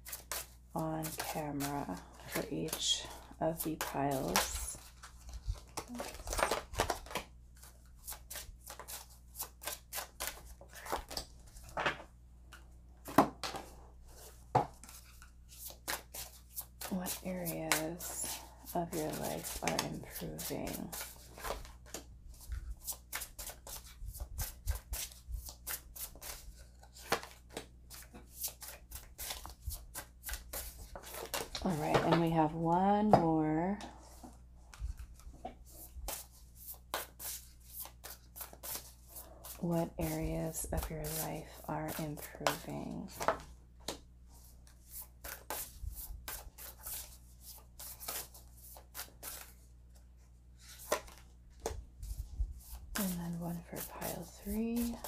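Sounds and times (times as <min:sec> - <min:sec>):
person speaking: 0:00.8 - 0:04.8, 0:16.9 - 0:21.1, 0:31.6 - 0:34.0, 0:39.5 - 0:43.2, 0:53.0 - 0:55.0
cards shuffling and snapping: 0:03.6 - 0:11.3, 0:54.8 - 0:55.0.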